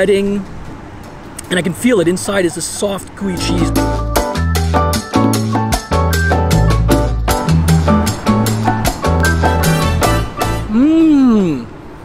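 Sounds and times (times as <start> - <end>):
background music with bass line: 3.4 - 10.7.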